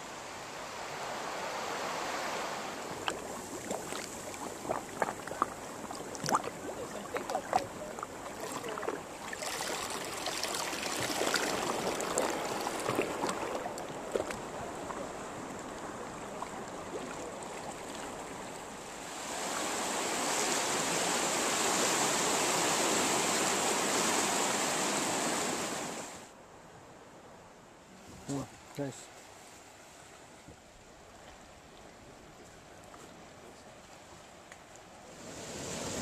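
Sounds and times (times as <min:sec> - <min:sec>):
water lapping around a kayak: 0:00.0 - 0:26.3, 0:29.1 - 0:36.0
waves washing over rocks: 0:00.0 - 0:26.3, 0:35.1 - 0:36.0.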